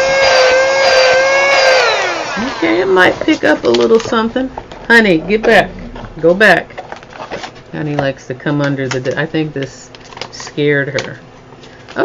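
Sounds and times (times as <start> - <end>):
handheld vacuum cleaner whine: 0.0 - 3.2.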